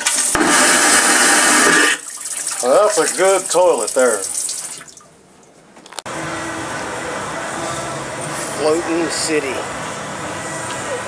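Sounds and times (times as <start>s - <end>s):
steady outdoor noise: 5.5s - 11.0s.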